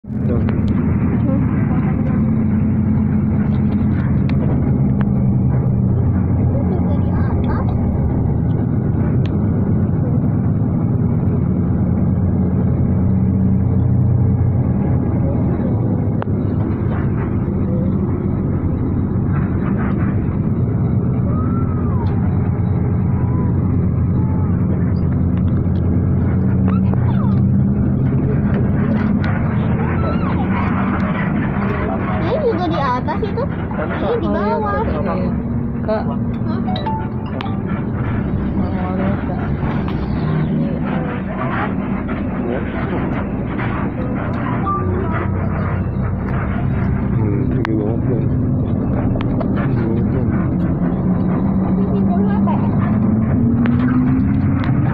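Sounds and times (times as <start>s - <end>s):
bus engine droning: 0.0s - 54.9s
tyre and road rumble: 0.0s - 54.9s
faint voices: 0.1s - 54.9s.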